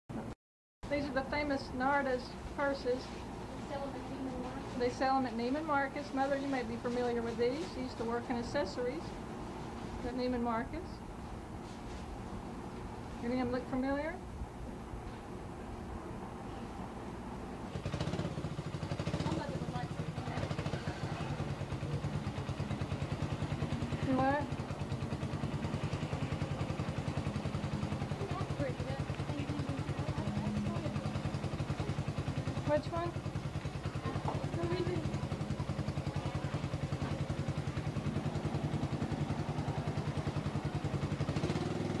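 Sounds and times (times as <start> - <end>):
pulsing low mechanical drone: 19.3 - 40.8.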